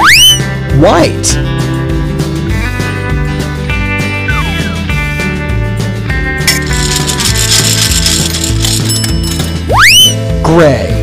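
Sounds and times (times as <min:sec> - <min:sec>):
upbeat backing music: 0:00.0 - 0:11.0
cartoon ratcheting crank: 0:06.5 - 0:09.5.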